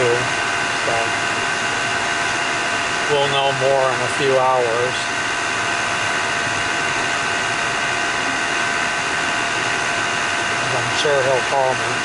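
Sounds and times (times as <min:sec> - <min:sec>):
car road and engine noise: 0:00.0 - 0:12.0
thin steady whine: 0:00.0 - 0:12.0.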